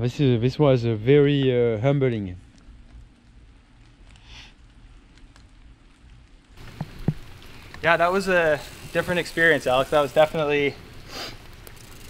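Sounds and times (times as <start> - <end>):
light rain dripping: 1.3 - 12.0.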